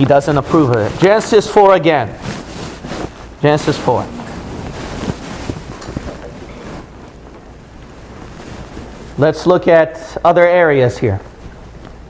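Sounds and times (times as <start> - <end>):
paper pages rustling: 0.0 - 9.2.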